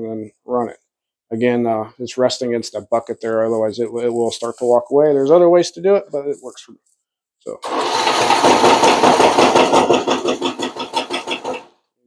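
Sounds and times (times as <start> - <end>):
electric drill: 7.6 - 11.7.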